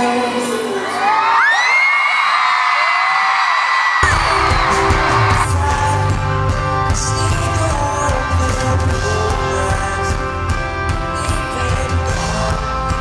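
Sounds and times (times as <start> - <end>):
live pop-rock band playing: 0.0 - 1.4, 4.0 - 13.0
audience screaming: 0.0 - 6.7.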